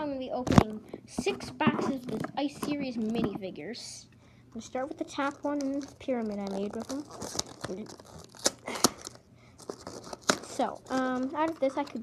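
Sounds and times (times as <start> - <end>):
cardboard tearing and crinkling: 5.1 - 12.0.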